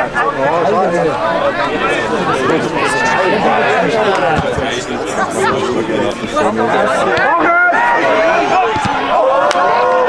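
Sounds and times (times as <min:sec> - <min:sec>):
crowd chatter and calling: 0:00.0 - 0:10.0.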